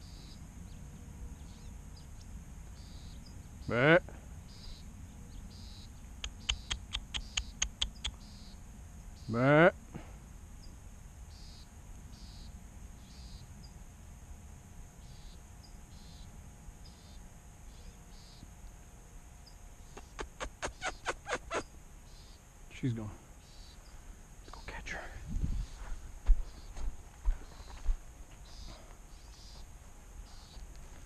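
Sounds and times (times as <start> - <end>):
faint high chirp: 4.5 - 8.6, 10.6 - 13.8, 15.0 - 18.5, 27.4 - 29.6
sharp ticks: 6.2 - 8.3
low wind rumble: 23.9 - 28.3.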